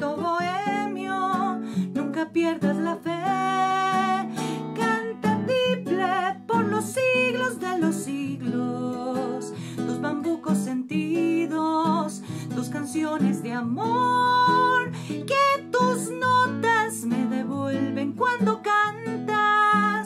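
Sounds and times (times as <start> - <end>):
strummed classical guitar: 0.0 - 20.0
woman singing with vibrato: 0.0 - 20.0.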